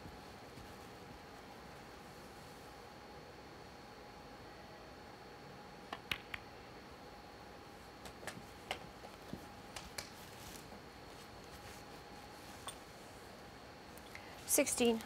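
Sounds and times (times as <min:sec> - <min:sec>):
faint steady hum: 0:00.0 - 0:15.0
snooker balls clicking: 0:05.9 - 0:06.4.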